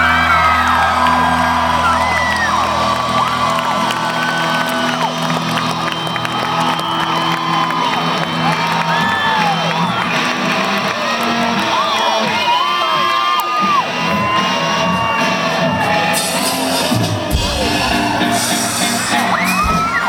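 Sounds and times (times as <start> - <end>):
crowd cheering and screaming: 0.0 - 20.0.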